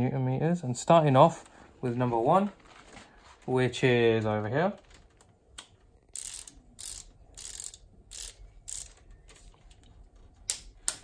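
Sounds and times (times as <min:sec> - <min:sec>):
ratchet wrench ratcheting: 0:06.1 - 0:09.0.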